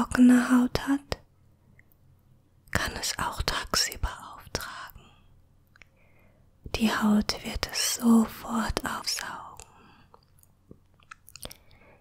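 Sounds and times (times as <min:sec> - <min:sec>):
moist mouth clicks: 0:09.5 - 0:11.8.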